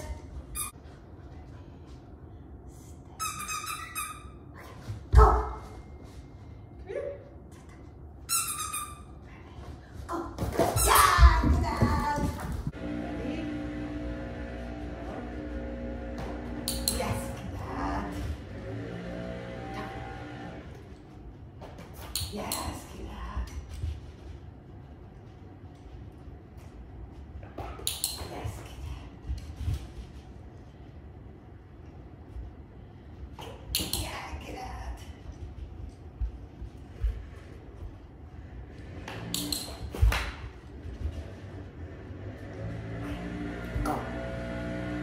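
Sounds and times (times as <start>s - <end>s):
high-pitched squeaks: 3.2s - 4.6s, 8.2s - 9.2s.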